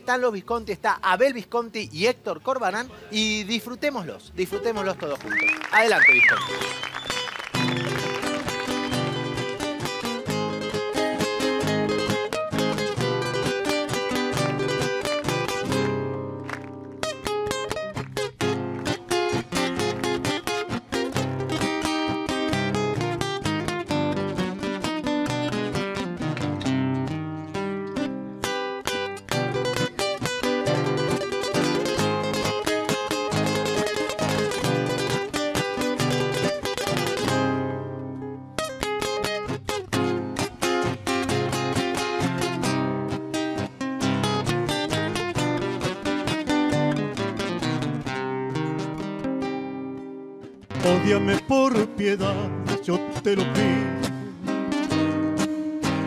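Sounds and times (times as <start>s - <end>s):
acoustic guitars playing: 0.0s - 56.0s.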